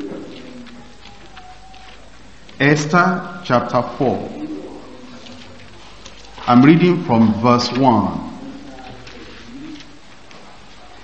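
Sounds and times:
faint low hum: 0.0 - 11.0
low room noise: 0.0 - 11.0.

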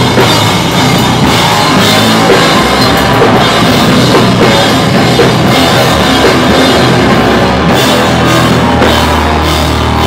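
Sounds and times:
hardcore band playing: 0.0 - 10.0.

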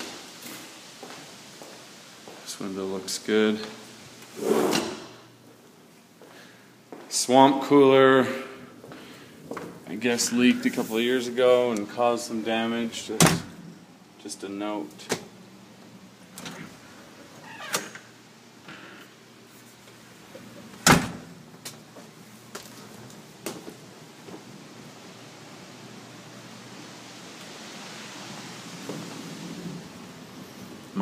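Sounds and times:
soft rustling hiss: 0.0 - 31.0.

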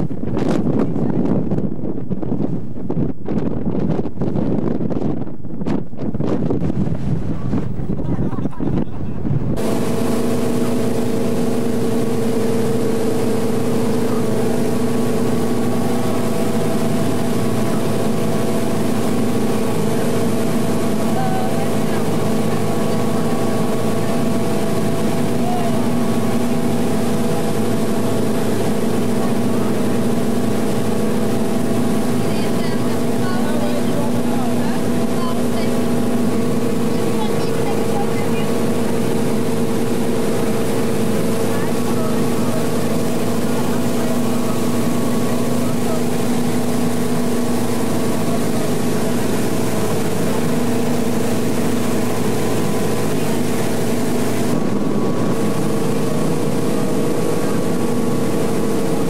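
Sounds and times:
motorboat engine running: 0.0 - 59.0
rushing water of boat wake: 0.0 - 59.0
wind buffeting microphone: 0.0 - 59.0.

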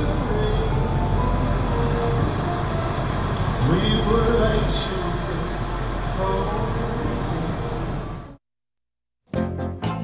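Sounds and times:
car road and engine rumble: 0.0 - 8.4.

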